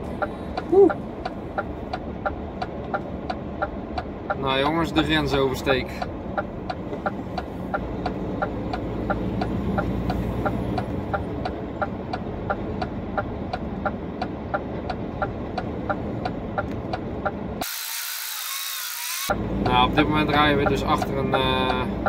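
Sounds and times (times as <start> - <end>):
engine and road rumble: 0.0 - 17.7, 19.1 - 22.0
turn signal relay ticking: 0.0 - 18.1, 18.8 - 22.0.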